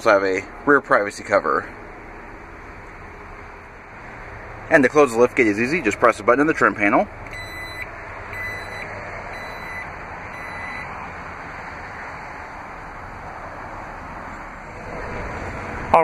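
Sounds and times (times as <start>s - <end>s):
electronic warning beeps: 7.3s - 10.9s.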